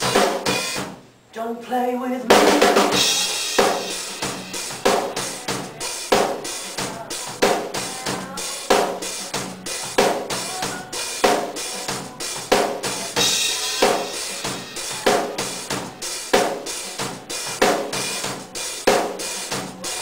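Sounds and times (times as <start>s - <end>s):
drum kit playing steady beat: 0.0s - 1.2s, 2.3s - 20.0s.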